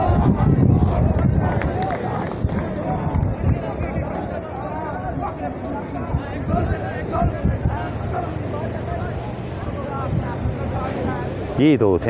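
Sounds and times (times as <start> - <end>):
wind rumbling on microphone: 0.0 - 11.6
distant voices calling out: 0.0 - 12.0.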